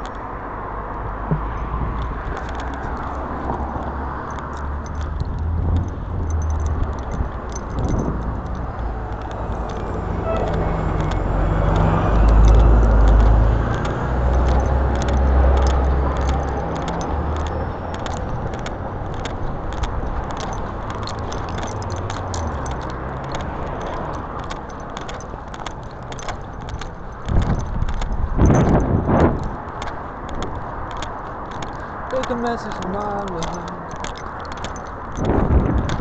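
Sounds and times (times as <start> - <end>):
gear clicking and jangling: 0.0 - 36.0
street traffic rumble: 0.0 - 36.0.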